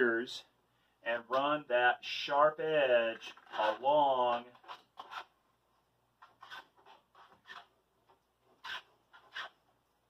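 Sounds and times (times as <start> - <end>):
shears scratching plastic sheet: 3.2 - 5.3, 6.2 - 7.7, 8.6 - 9.6.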